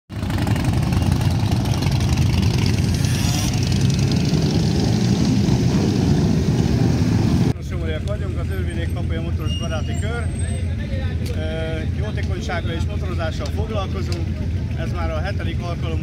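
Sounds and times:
motorcycle engines riding past: 0.1s - 7.6s.

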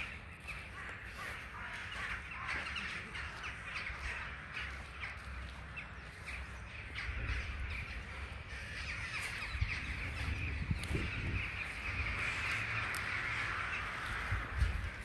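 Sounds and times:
flock of birds calling: 0.0s - 15.0s.

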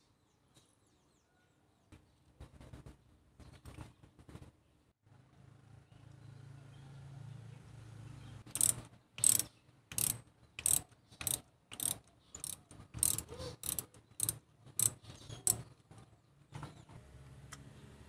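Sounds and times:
ratchet wrench clicking: 8.5s - 15.6s.

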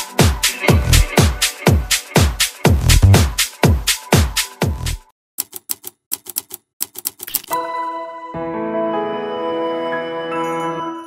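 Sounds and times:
typewriter key clicks: 5.4s - 7.6s.

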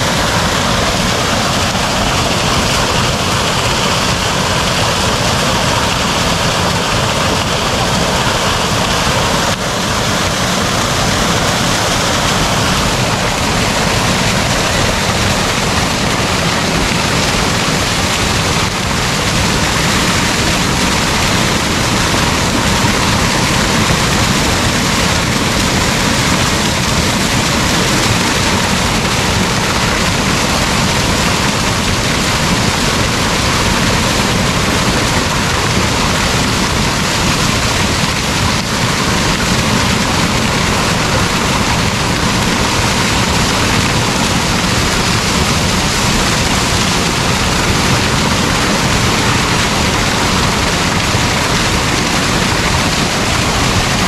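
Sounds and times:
waterfall rushing: 0.0s - 54.0s.

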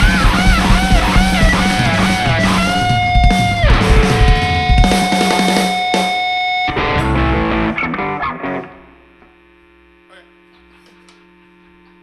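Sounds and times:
guitar amplifier mains hum: 0.0s - 12.0s.

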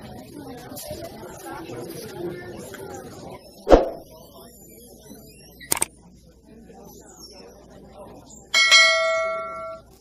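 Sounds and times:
faint shopper chatter: 0.0s - 10.0s
bright bell chime: 8.6s - 9.8s.

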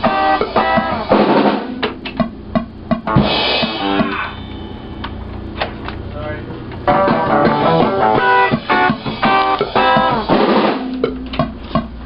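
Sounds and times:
cymbal crash: 0.0s - 1.9s, 3.1s - 5.3s
low steady hum: 0.0s - 9.7s.

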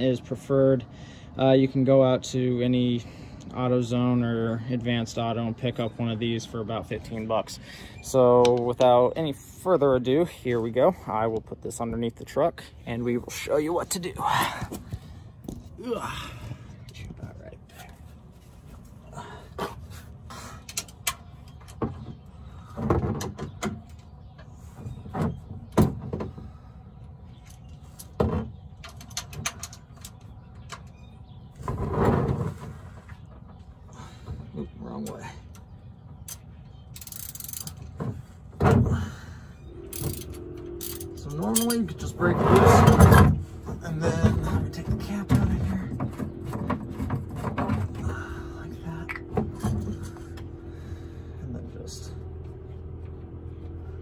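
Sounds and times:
steady low hum: 23.7s - 54.0s
hand tools clicking and knocking: 36.2s - 38.2s, 39.9s - 48.3s.

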